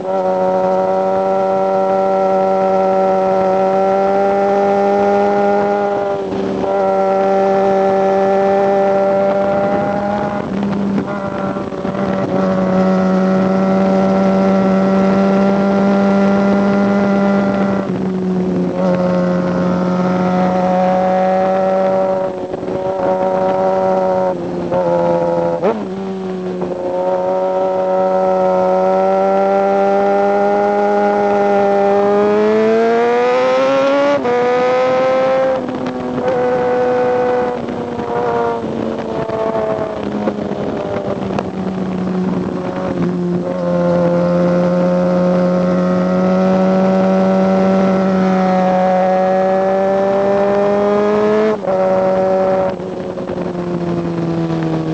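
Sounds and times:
motorcycle engine revving: 0.0s - 54.9s.

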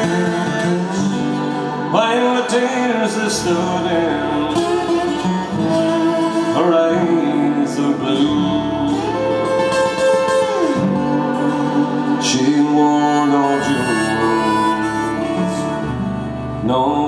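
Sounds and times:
acoustic guitar strumming: 0.0s - 17.0s
harmonica melody with bends: 0.0s - 17.0s.

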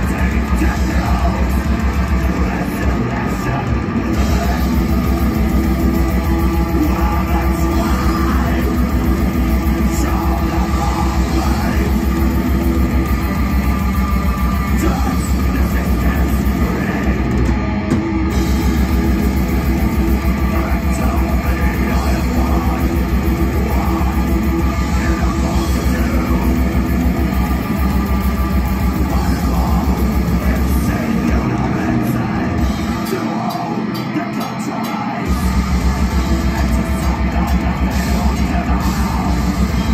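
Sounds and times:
metal band playing live: 0.0s - 39.9s.

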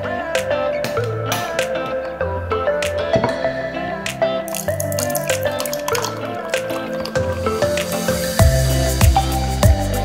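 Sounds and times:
background music: 0.0s - 10.0s
drink pouring into glass: 4.5s - 8.4s.

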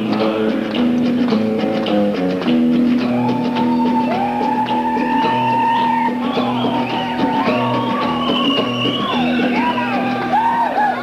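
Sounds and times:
live band with sliding guitar: 0.0s - 11.0s.

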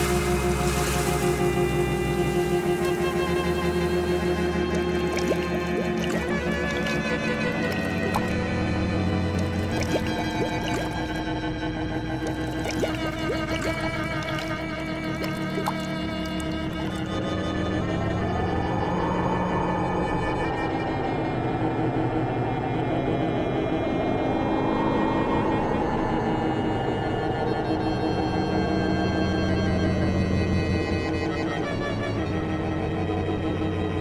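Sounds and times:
eerie drone score: 0.0s - 34.0s.

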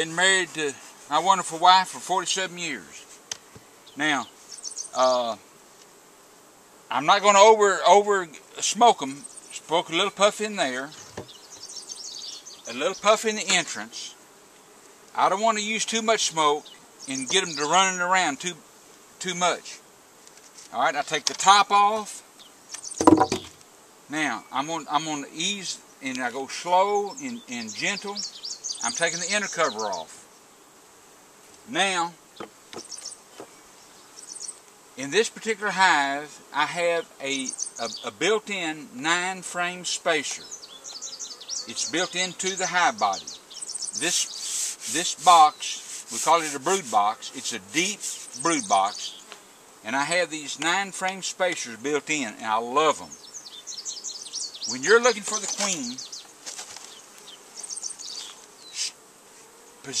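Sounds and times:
honey bees humming: 0.0s - 60.0s
brief rustle: 56.4s - 57.0s.

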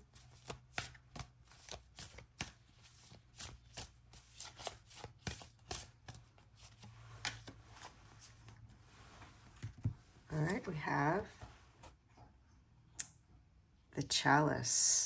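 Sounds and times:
cards being shuffled: 0.0s - 11.9s.

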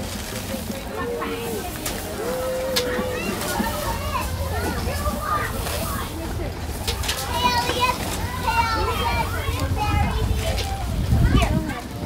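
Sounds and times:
children chattering and calling out: 0.0s - 12.0s
steady low rumble: 1.9s - 12.0s.

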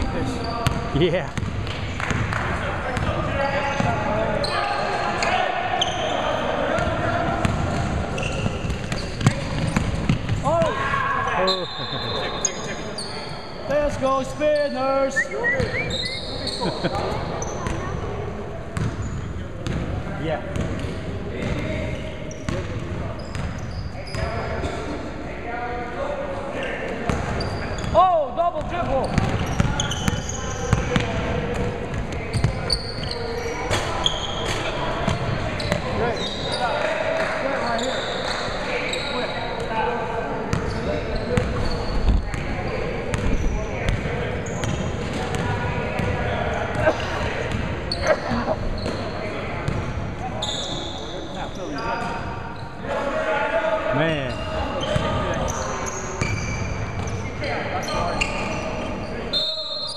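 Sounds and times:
shoe squeal: 0.2s - 0.9s, 3.3s - 6.5s, 8.1s - 13.8s, 14.4s - 17.9s, 21.9s - 24.8s, 26.6s - 28.1s, 28.9s - 31.0s, 32.2s - 36.8s, 37.4s - 39.8s, 40.5s - 44.9s, 47.9s - 52.8s, 54.0s - 59.9s
echoing voices: 42.6s - 50.1s.

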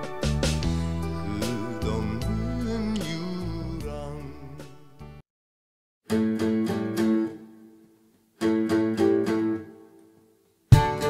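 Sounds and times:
guitar chords ringing: 0.0s - 5.2s, 10.7s - 11.0s.

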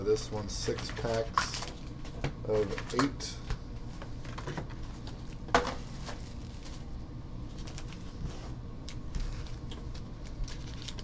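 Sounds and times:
low steady hum: 0.0s - 11.0s
card packs tapping and clicking: 0.4s - 6.8s.

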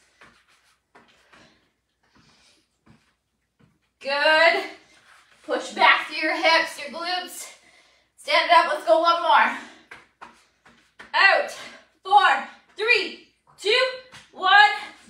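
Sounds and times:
woman speaking: 4.0s - 4.8s, 5.5s - 7.6s, 8.2s - 9.7s, 11.2s - 15.0s.

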